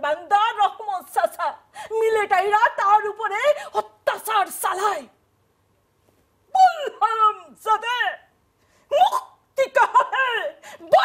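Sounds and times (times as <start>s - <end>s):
woman speaking animatedly: 0.0s - 5.2s, 6.5s - 8.3s, 8.9s - 11.0s.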